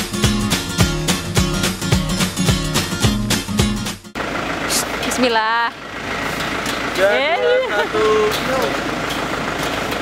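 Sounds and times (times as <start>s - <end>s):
roadside traffic passing: 0.0s - 10.0s
motorbike engines: 4.2s - 10.0s.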